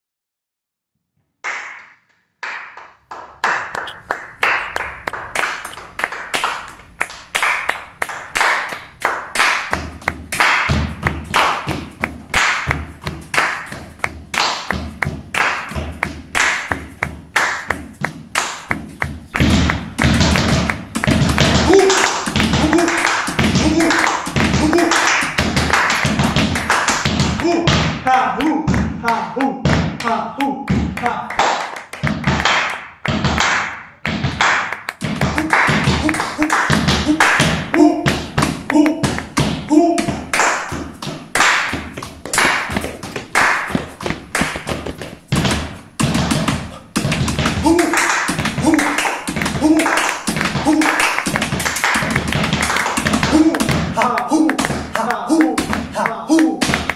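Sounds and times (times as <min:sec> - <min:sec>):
hand claps: 0:01.4 - 0:27.5, 0:29.4 - 0:56.9
foot stamps: 0:09.6 - 0:31.2, 0:31.9 - 0:56.9.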